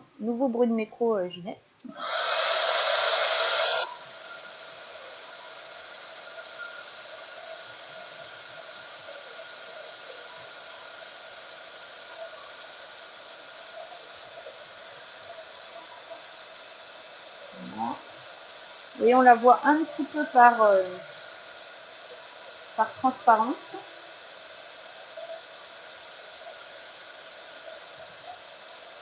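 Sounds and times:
heat gun fan blowing with whine: 1.8 - 29.0.

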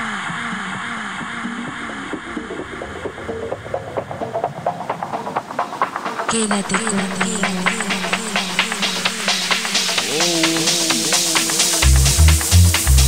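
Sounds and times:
noise wash: 0.0 - 13.0.

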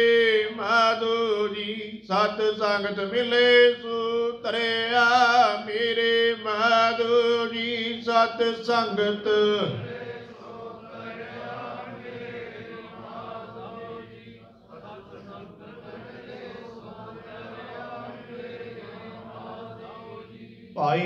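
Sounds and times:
loud chanting at microphone: 0.0 - 21.0
soft steady chanting: 0.0 - 21.0.

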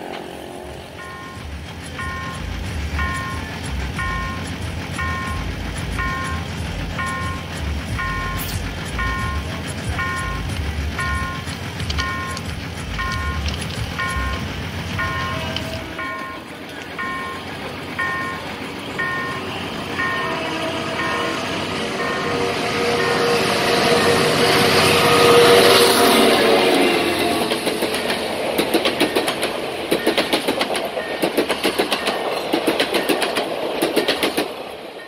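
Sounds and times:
diesel locomotive passing: 0.0 - 35.0
train wheels clickety-clack: 0.0 - 35.0
level-crossing warning bell: 0.8 - 27.5, 29.0 - 33.4.

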